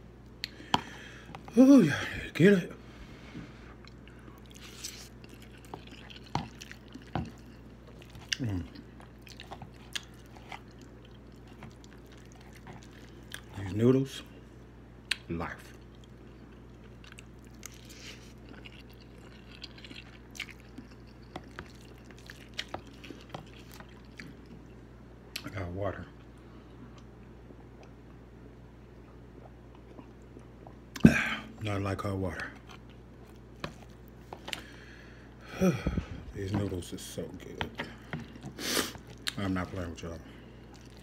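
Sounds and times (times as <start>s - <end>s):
person chewing noodles: 3.6s - 25.4s, 32.6s - 41.0s
low hum: 26.1s - 38.6s.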